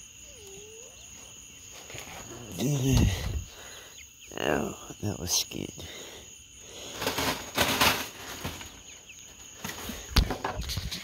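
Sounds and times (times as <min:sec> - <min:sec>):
rustling in a wire-mesh pen: 0:00.0 - 0:04.6, 0:06.5 - 0:11.0
cricket trill: 0:00.0 - 0:11.0.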